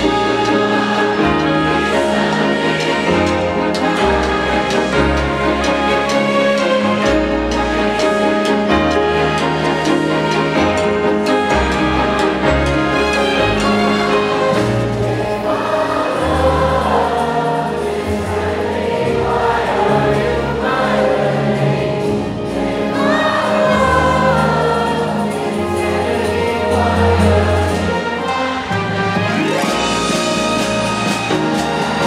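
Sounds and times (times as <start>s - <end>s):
crowd singing along: 0.0s - 32.0s
symphony orchestra playing: 0.0s - 32.0s.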